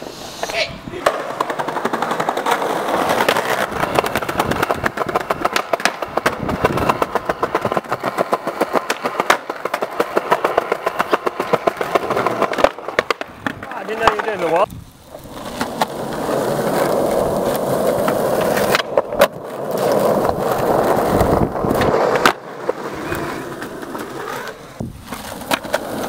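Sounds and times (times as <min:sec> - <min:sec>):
skateboard wheels rolling on pavement: 0:00.0 - 0:26.0.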